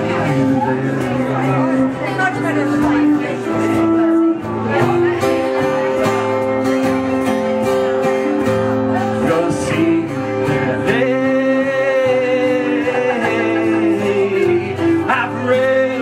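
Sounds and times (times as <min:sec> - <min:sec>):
electric guitar: 0:00.0 - 0:16.0
strummed acoustic guitar: 0:00.0 - 0:16.0
harmonica playing held notes: 0:01.7 - 0:05.2.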